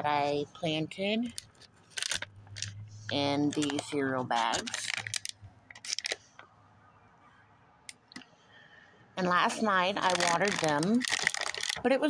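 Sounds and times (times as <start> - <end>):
handling rustles and clicks: 1.3 - 6.6, 10.0 - 11.8.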